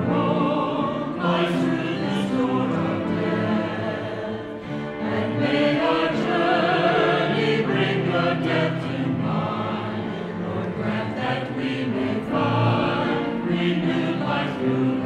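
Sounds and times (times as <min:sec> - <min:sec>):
cello: 0:00.0 - 0:15.0
choir singing: 0:00.0 - 0:15.0
piano: 0:00.0 - 0:15.0.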